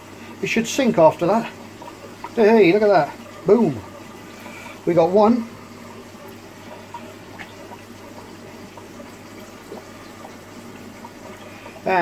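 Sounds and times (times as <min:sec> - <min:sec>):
aquarium air bubbling: 0:00.0 - 0:12.0.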